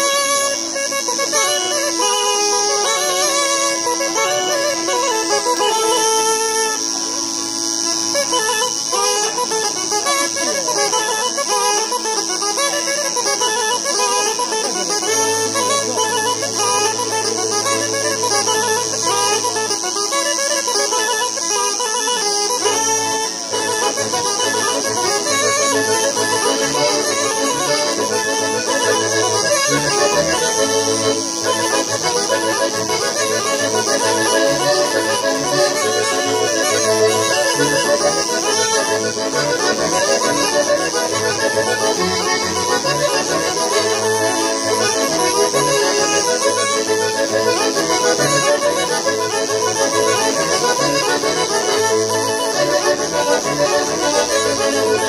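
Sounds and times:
button accordion: 0.0s - 55.0s
wind instrument melody: 0.0s - 55.0s.

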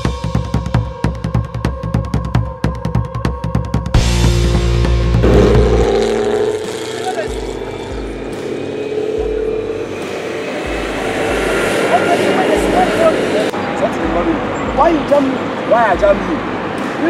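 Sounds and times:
vehicle engine droning: 4.0s - 17.0s
loud low rumble: 4.3s - 8.4s, 9.2s - 13.6s.

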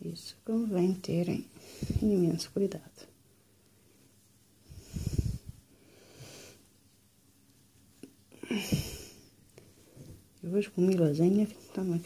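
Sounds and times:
person breathing close to microphone: 1.5s - 2.2s, 4.6s - 6.7s, 8.4s - 10.2s.

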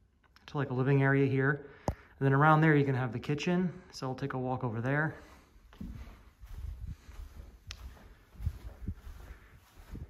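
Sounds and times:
footsteps on carpet: 5.1s - 10.0s.

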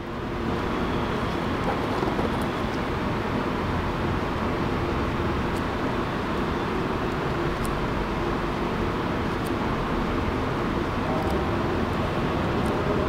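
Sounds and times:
steady background noise: 0.0s - 13.0s.

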